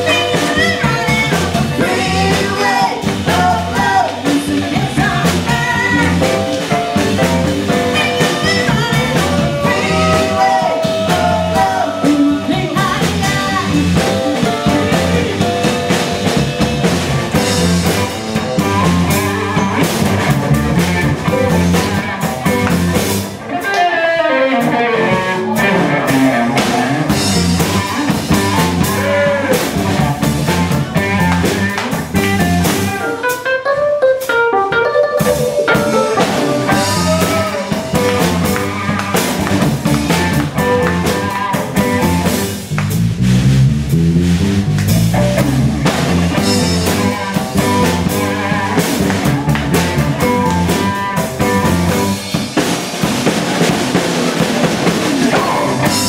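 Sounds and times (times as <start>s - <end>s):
drum kit: 0.0s - 56.0s
electric bass: 0.0s - 56.0s
electric guitar: 0.0s - 56.0s.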